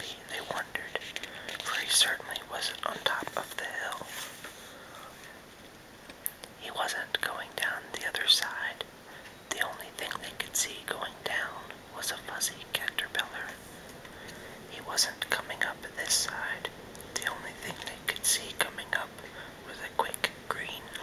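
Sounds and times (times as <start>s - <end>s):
man whispering: 0.0s - 4.2s, 6.5s - 8.9s, 9.5s - 13.6s, 14.7s - 21.0s.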